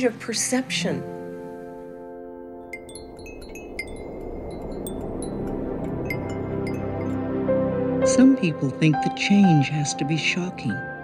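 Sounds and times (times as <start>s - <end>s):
wind chime tinkling: 2.7s - 7.4s.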